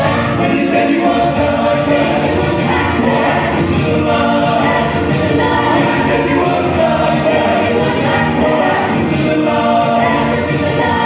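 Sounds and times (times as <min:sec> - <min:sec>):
mixed choir singing in harmony: 0:00.0 - 0:11.0.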